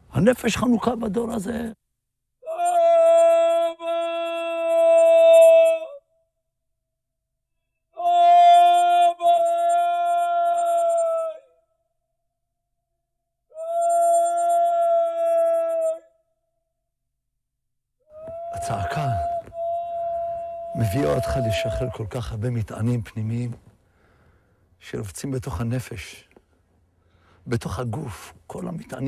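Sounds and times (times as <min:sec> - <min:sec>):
man crying out loudly: 0:02.4 - 0:06.0, 0:08.0 - 0:11.5, 0:18.1 - 0:22.1.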